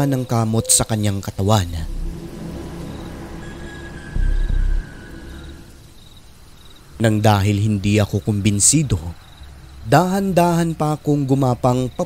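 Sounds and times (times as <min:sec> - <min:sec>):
low rumbling ambient drone: 0:00.2 - 0:08.8.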